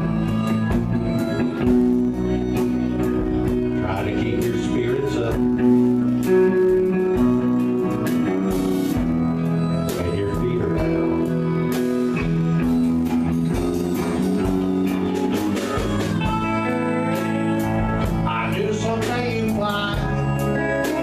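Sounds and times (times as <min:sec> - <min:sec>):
bass guitar: 0:00.0 - 0:21.0
electric guitars: 0:00.0 - 0:21.0.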